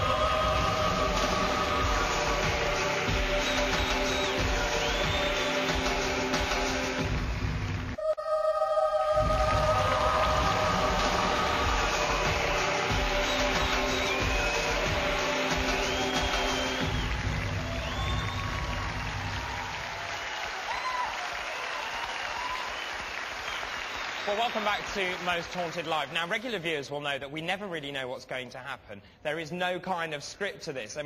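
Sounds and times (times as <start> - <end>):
studio audience applause: 0.0 - 8.0, 9.7 - 26.9
show music with sustained chords: 0.0 - 19.5.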